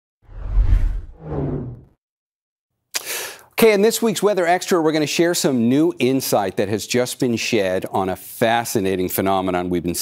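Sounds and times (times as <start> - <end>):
whoosh with deep bass rumble: 0.2 - 1.9.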